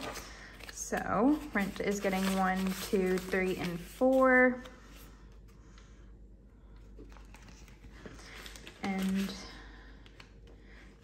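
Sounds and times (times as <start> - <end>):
plastic envelope handled: 0.0 - 5.0, 7.0 - 11.0
paper banknotes rustling: 0.0 - 5.1, 7.0 - 11.0.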